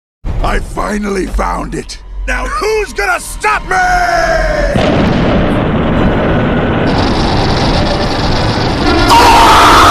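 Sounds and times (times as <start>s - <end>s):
explosive rush of noise: 4.7s - 9.9s.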